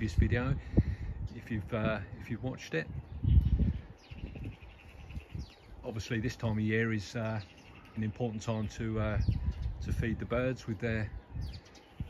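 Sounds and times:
small bird calling rapidly: 3.0 - 10.2.

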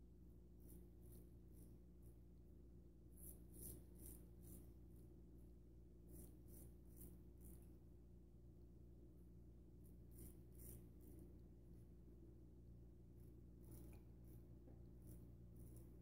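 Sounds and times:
razor scraping stubble: 3.2 - 4.7, 10.0 - 11.2.

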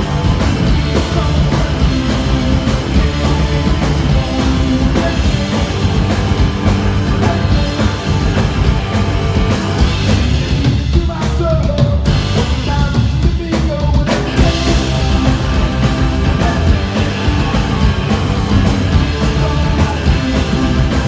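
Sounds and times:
punk rock band playing live: 0.0 - 21.0.

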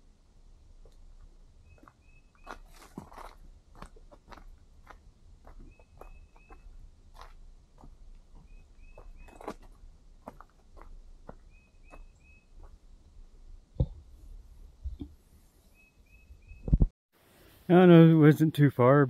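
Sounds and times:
footsteps on leaf litter: 2.4 - 5.6.

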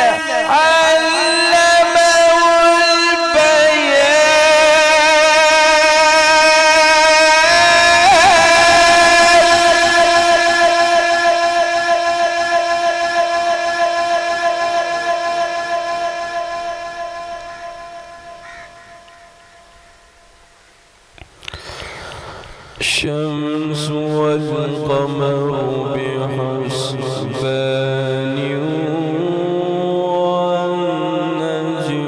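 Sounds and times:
man reciting over a loudspeaker: 0.0 - 18.4, 22.1 - 32.0.

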